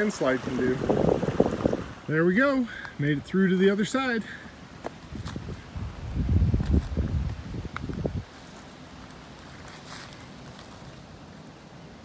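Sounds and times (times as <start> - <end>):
wind buffeting microphone: 0.0 - 2.1, 5.0 - 8.4
faint breeze: 0.0 - 12.0
footsteps in dry leaves: 4.8 - 11.6.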